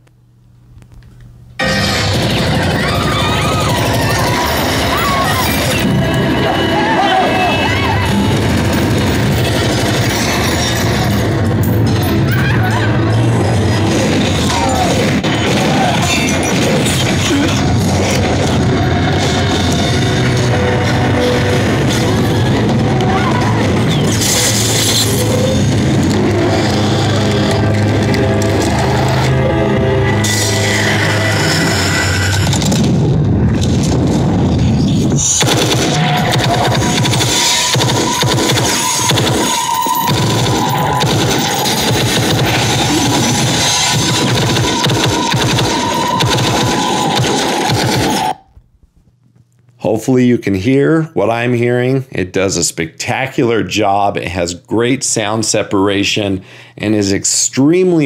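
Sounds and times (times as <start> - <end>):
loud action film music: 1.6 - 48.4.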